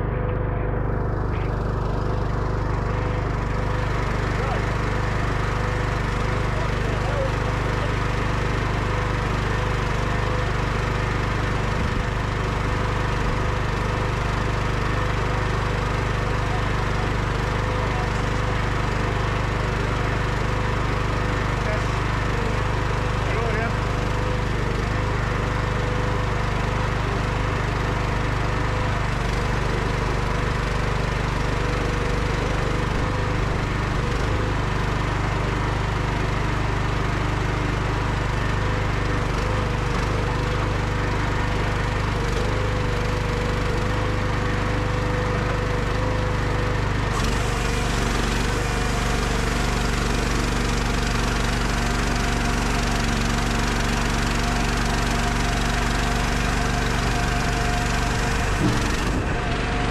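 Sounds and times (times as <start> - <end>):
machine engine running steadily: 0.0 - 59.9.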